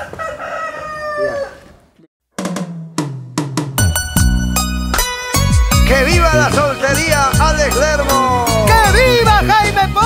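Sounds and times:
timbales drum fill: 2.4s - 5.1s.

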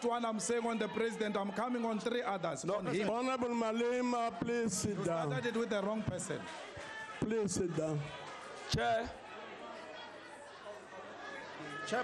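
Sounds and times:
man speaking: 0.0s - 6.4s
background chatter of many voices: 0.0s - 12.0s.

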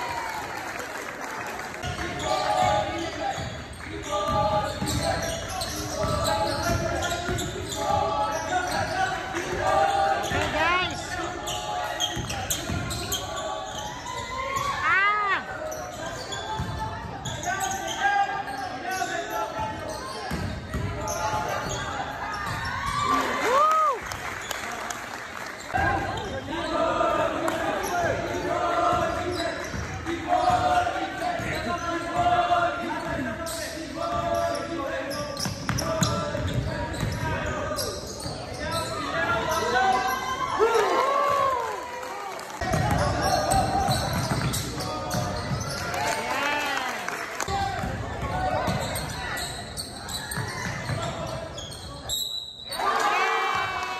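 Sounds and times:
sneakers squeaking: 1.8s - 23.4s, 25.4s - 41.6s, 42.6s - 46.6s, 47.5s - 53.8s
echoing voices: 1.8s - 23.5s, 25.8s - 41.6s.

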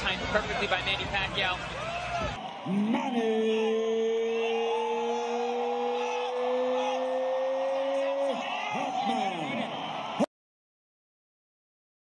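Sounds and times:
arena crowd cheering: 0.0s - 10.3s
people shouting: 2.0s - 10.3s
man shouting: 2.6s - 9.8s.

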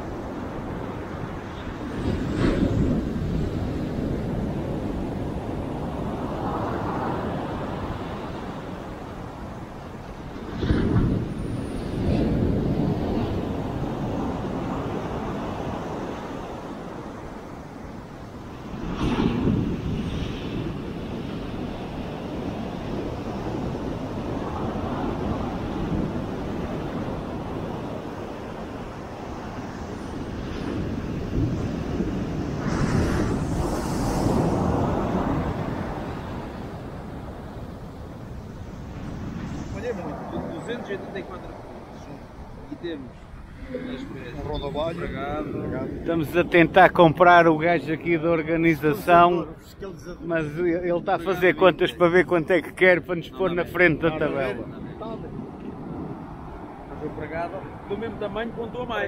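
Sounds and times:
ocean surf breaking on beach: 0.0s - 59.0s
wind buffeting microphone: 0.0s - 59.0s.

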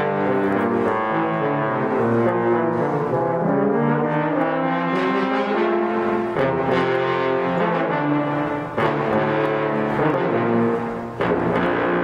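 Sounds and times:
concert band playing: 0.0s - 12.0s
trombones holding sustained chords: 0.0s - 12.0s.

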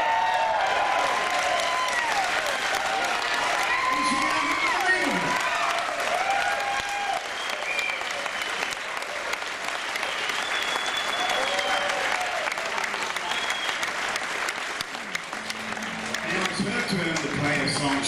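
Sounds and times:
audience applauding: 0.0s - 18.0s
people cheering: 0.0s - 18.0s.

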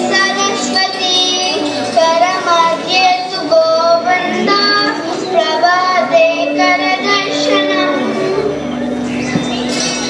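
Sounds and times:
child singing: 0.0s - 8.5s.

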